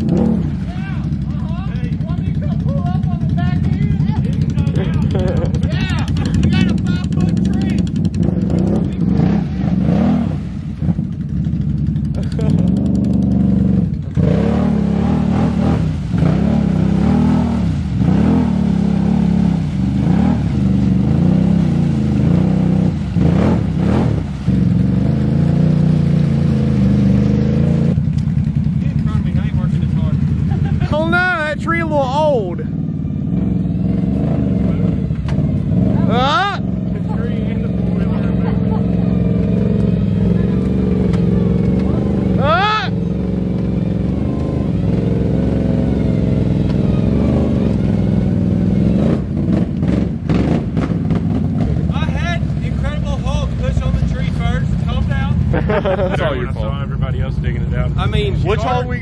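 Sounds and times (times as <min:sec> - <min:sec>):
atv engine revving: 0:00.0 - 0:59.0.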